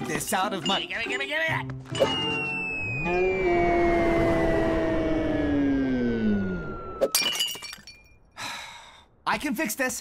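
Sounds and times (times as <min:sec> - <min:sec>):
falling gliding tone: 0:02.4 - 0:07.2
ceramic figurine smashing on floor: 0:07.1 - 0:08.0.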